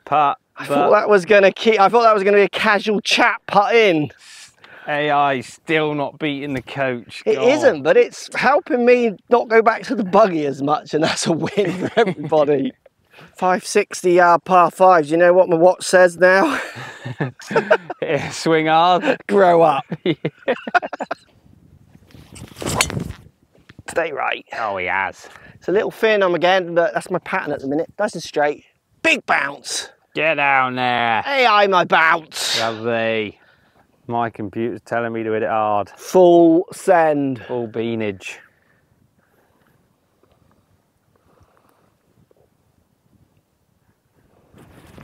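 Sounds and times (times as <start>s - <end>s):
wind on microphone: 21.0s - 23.9s, 44.1s - 45.0s
golf club swishing: 22.1s - 23.2s
faint ticks: 39.5s - 42.4s.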